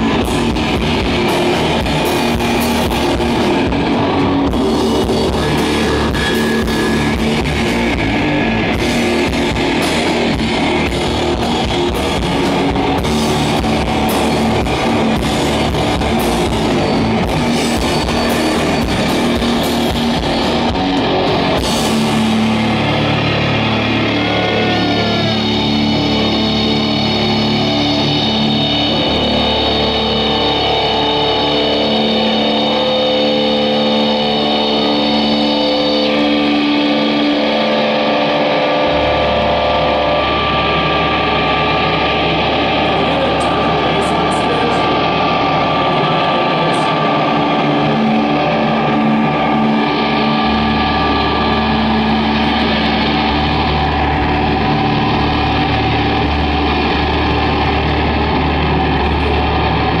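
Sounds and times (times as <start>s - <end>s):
deep bass: 0.0s - 60.0s
distorted electric guitar: 0.0s - 60.0s.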